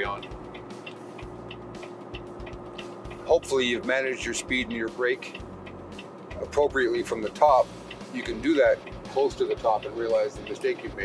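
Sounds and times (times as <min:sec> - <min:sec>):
diesel truck engine drone: 0:00.0 - 0:11.0
faint ticks: 0:00.0 - 0:11.0
road noise: 0:00.0 - 0:11.0.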